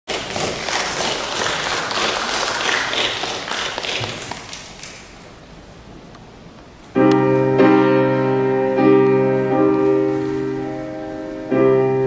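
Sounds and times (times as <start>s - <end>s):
audience applauding: 0.1s - 5.1s.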